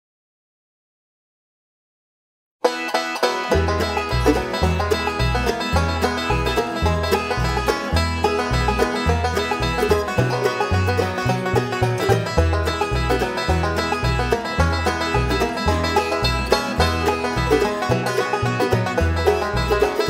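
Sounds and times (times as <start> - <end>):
banjo: 2.6 - 20.0
mandolin: 2.6 - 20.0
upright bass: 2.6 - 20.0
acoustic guitar: 2.7 - 20.0.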